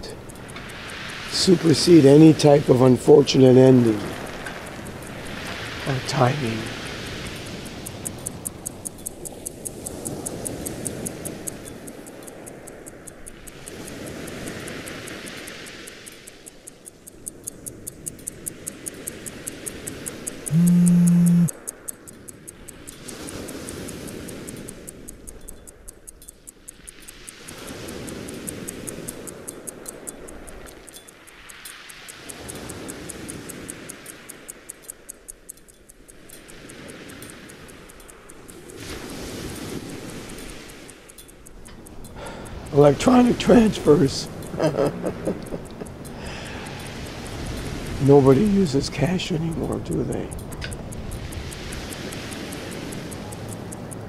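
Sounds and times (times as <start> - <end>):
pocket watch ticking: 0.0 - 54.0
loud low buzz: 20.5 - 21.5
rising and falling wash: 41.1 - 50.5, 51.4 - 54.0.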